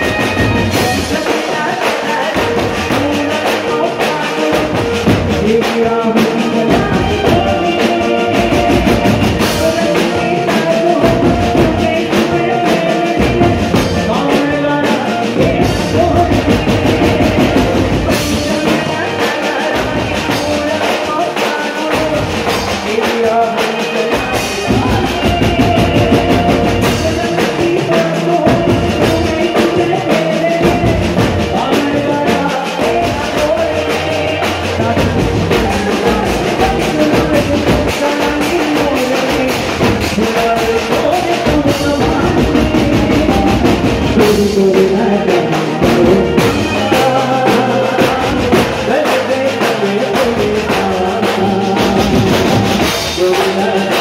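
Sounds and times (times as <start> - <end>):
dense drum rhythm: 0.0 - 54.0
loud live folk dance band: 0.0 - 54.0.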